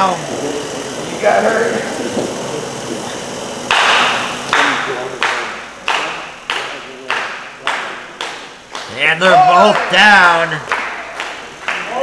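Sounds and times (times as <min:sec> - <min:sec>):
crowd clapping in unison: 0:03.7 - 0:09.0, 0:09.6 - 0:12.0.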